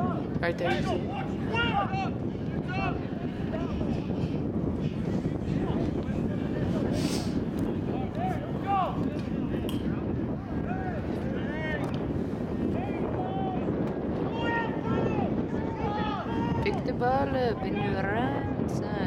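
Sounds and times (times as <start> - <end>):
players and spectators shouting: 0.0 - 3.9, 12.6 - 16.7
wind on microphone: 0.0 - 19.0.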